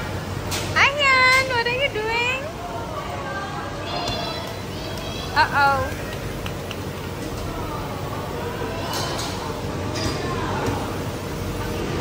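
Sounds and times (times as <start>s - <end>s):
blower rushing hum: 0.0s - 12.0s
faint indistinct voices: 0.2s - 12.0s.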